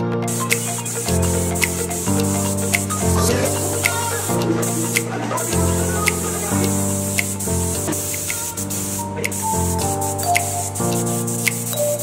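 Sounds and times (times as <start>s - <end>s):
background music: 0.0s - 12.0s
paint spray gun hissing: 0.3s - 12.0s.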